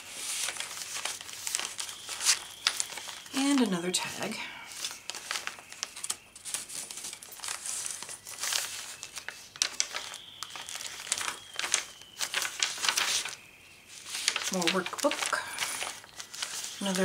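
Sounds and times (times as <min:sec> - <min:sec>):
page being turned: 0:00.0 - 0:03.7, 0:04.7 - 0:17.0
paper rustling and crinkling: 0:00.0 - 0:17.0.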